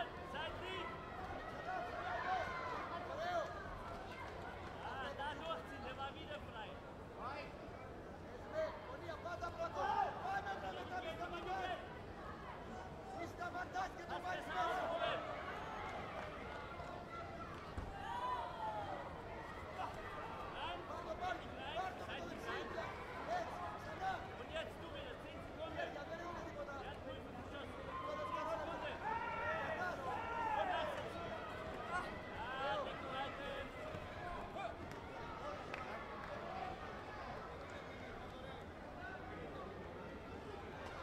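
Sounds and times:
crowd of voices talking: 0.0s - 41.0s.

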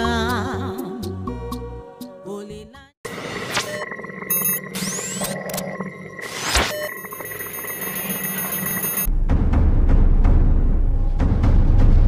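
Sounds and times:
high-pitched electronic beeping: 3.1s - 9.1s.

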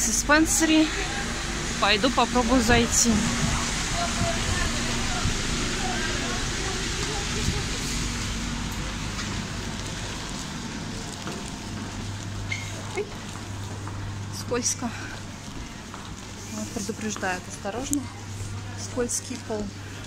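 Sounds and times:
faint voices of passers-by: 0.0s - 20.0s
street rushing noise: 0.0s - 20.0s.

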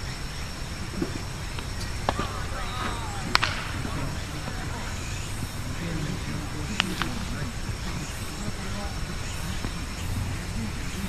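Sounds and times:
faint voices: 0.0s - 11.0s
low background hum: 0.0s - 11.0s
sharp cracks: 0.0s - 11.0s.

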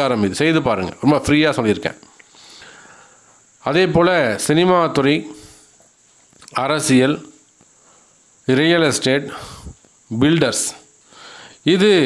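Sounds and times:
man speaking: 0.0s - 2.1s, 3.6s - 5.4s, 6.4s - 7.4s, 8.5s - 10.9s, 11.6s - 12.0s.

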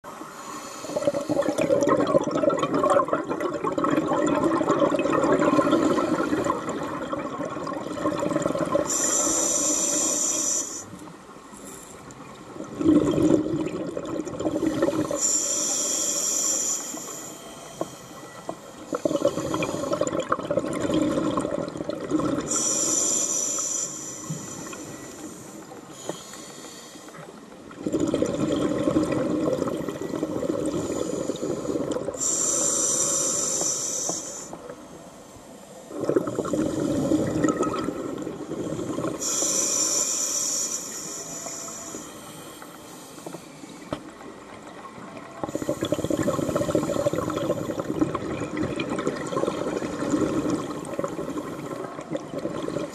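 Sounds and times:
regulator hissing inhales: 0.2s - 1.6s, 8.9s - 11.0s, 15.1s - 20.0s, 22.5s - 27.3s, 30.8s - 35.9s, 39.2s - 43.9s
bubbling exhales underwater: 0.9s - 9.3s, 12.6s - 15.3s, 18.9s - 22.9s, 27.7s - 32.8s, 35.9s - 39.5s, 45.4s - 52.9s.

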